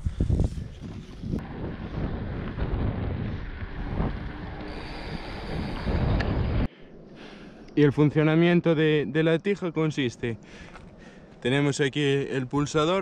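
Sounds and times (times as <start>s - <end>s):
wind buffeting microphone: 0.0s - 6.7s.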